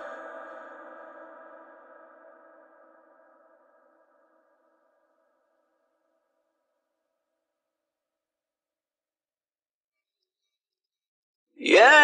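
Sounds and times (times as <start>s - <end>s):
reverberant chanted voice echo: 0.0s - 4.8s, 11.6s - 12.0s.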